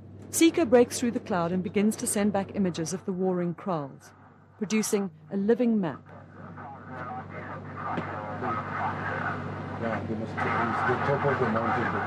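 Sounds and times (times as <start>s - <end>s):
steady low hum: 0.0s - 12.0s
indistinct voices talking: 0.4s - 12.0s.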